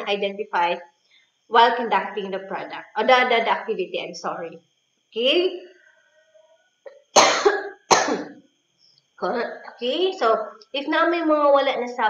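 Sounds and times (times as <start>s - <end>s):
woman coughing: 7.2s - 8.4s.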